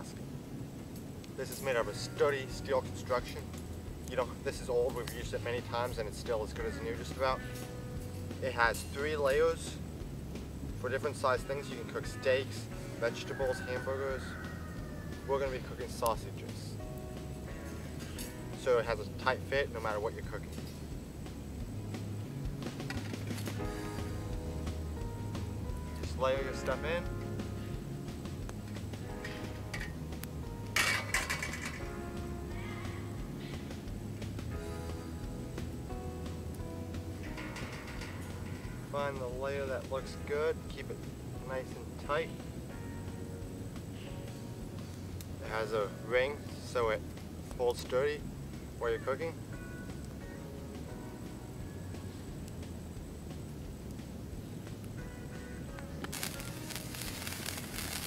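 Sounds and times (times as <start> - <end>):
background music: 0.0 - 58.0
campfire crackling and popping: 0.0 - 58.0
sausages laid into wire grill basket: 1.4 - 16.8, 28.3 - 32.2, 36.5 - 42.1.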